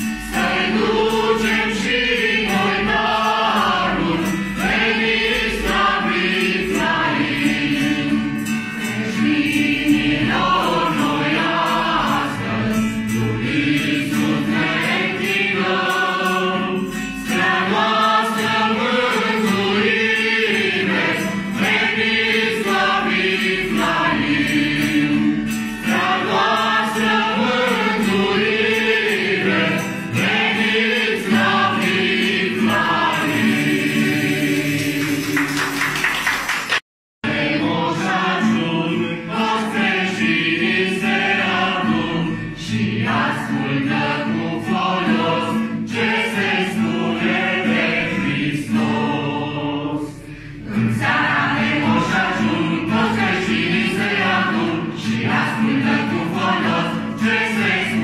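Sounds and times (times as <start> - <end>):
group singing a carol: 0.0 - 36.4, 37.2 - 58.0
strummed acoustic guitar: 0.0 - 36.5, 37.2 - 58.0.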